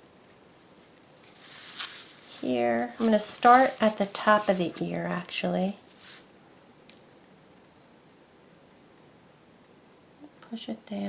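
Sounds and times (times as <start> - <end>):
thin high whine: 0.0 - 11.0.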